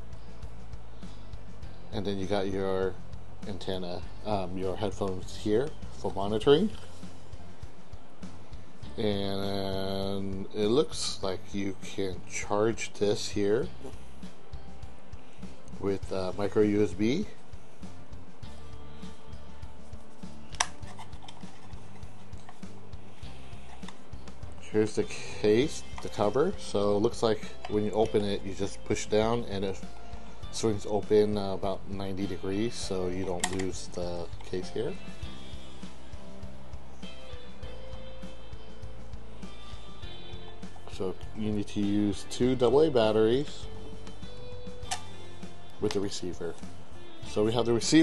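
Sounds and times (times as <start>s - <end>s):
background music: 0.0s - 48.0s.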